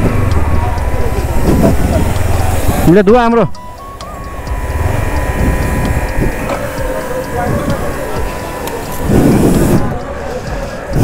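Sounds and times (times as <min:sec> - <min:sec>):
pressure washer whine: 0:00.0 - 0:11.0
water spray rushing: 0:04.8 - 0:11.0.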